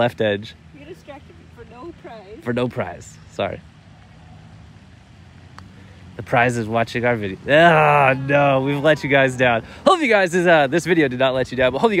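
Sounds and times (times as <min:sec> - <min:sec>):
distant road traffic hum: 0:00.0 - 0:12.0.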